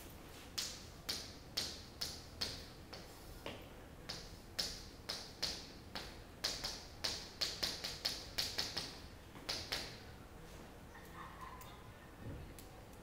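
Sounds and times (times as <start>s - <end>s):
chalk tapping on chalkboard: 4.1s - 9.9s.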